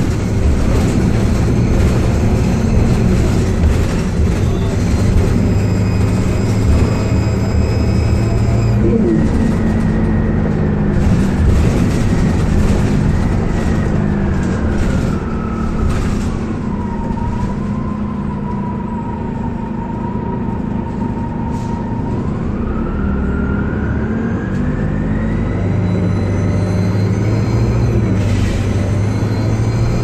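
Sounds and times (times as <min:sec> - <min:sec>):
bus engine running: 0:00.0 - 0:30.0
high whine: 0:07.4 - 0:10.4.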